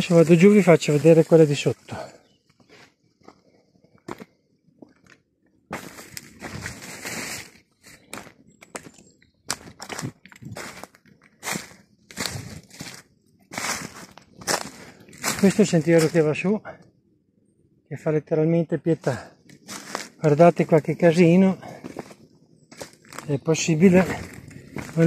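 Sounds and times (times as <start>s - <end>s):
footsteps crunching through dry leaves: 0.0s - 2.0s, 5.7s - 16.3s, 19.1s - 25.0s.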